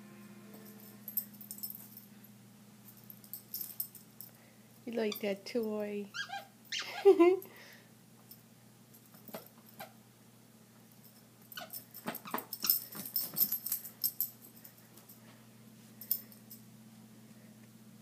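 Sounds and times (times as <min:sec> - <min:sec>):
person laughing: 0:06.8 - 0:07.5.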